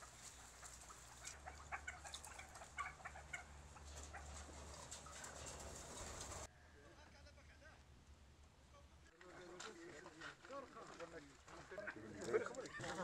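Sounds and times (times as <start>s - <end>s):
partridges clucking and chirping: 0.0s - 6.5s.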